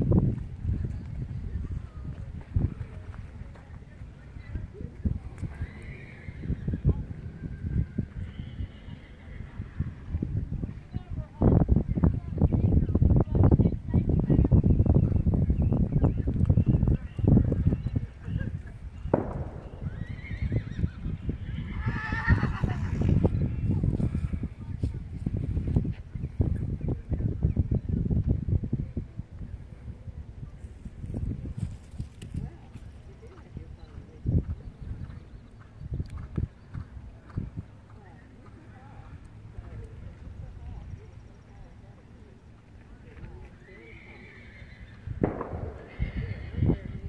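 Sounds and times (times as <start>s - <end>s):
horse whinnying: 5.5s - 6.7s, 8.2s - 9.5s, 19.6s - 23.2s, 43.7s - 45.0s, 45.7s - 47.0s.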